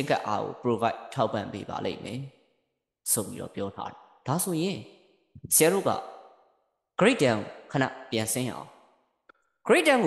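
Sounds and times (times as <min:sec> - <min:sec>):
person speaking: 0:00.0 - 0:02.4, 0:03.0 - 0:06.2, 0:07.0 - 0:08.8, 0:09.7 - 0:10.0.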